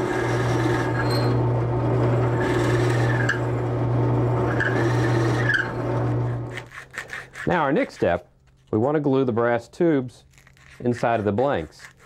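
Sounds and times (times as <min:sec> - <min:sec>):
drill bit rasping into wood: 0:00.0 - 0:01.4, 0:02.2 - 0:03.4, 0:04.4 - 0:07.5
drill press motor hum: 0:00.0 - 0:06.6.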